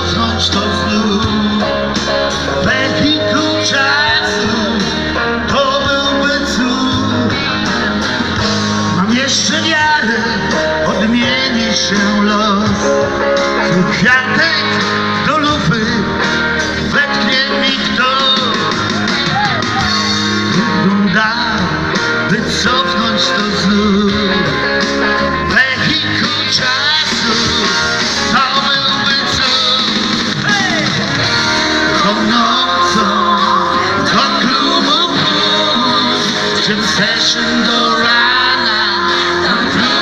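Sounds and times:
live dance band: 0.0 - 40.0
person singing: 0.0 - 40.0.

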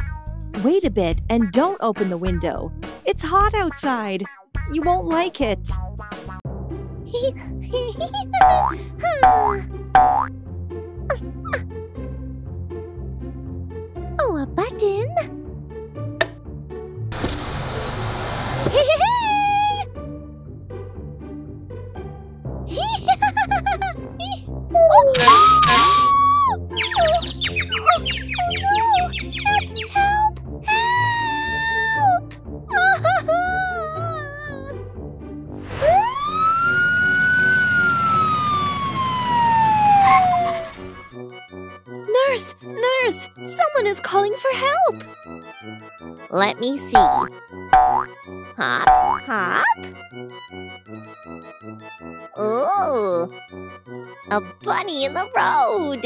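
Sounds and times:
cheerful children's music: 0.0 - 6.4, 7.0 - 10.3, 12.6 - 15.5, 18.8 - 35.2, 39.0 - 56.0
high voice crying out: 24.8 - 29.1
ambulance siren wail: 35.8 - 41.0.

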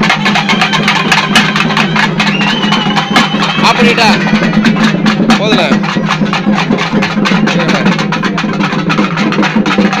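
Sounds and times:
rapid dense drumming: 0.0 - 10.0.

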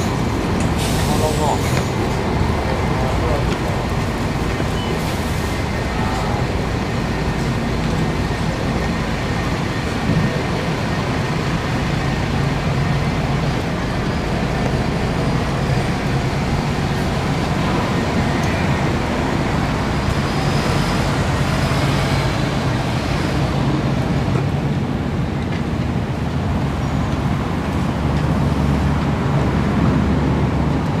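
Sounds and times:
road traffic noise: 0.0 - 31.0.

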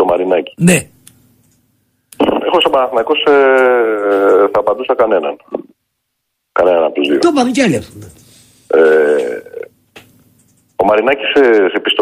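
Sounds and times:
man saying eh: 7.0 - 9.4.

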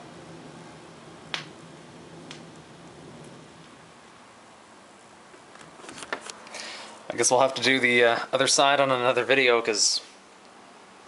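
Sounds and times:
faint hum: 0.0 - 11.0
vinyl surface hiss: 0.0 - 11.0.

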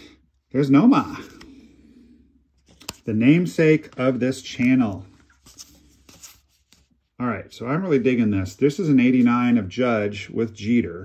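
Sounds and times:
trading cards shuffling: 2.6 - 7.0.

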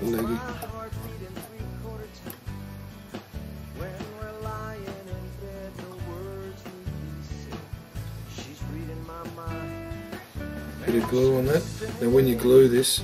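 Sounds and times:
guitar and bass music: 0.0 - 13.0.

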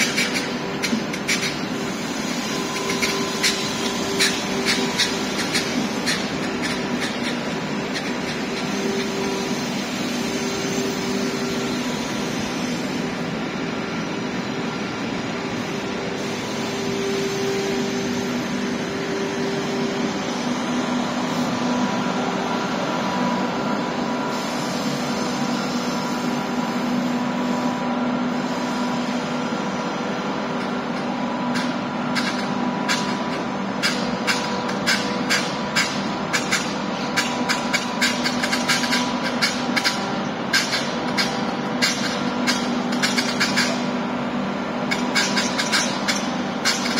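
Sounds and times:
train mechanical hum and running noise: 0.0 - 46.9.

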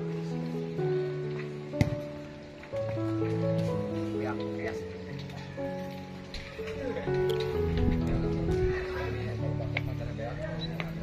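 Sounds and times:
slow held-note background music: 0.0 - 11.0.

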